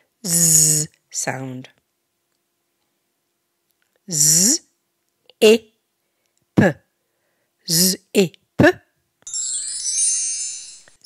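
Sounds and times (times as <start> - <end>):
twinkling chime with pitch glides: 9.2 - 11.0.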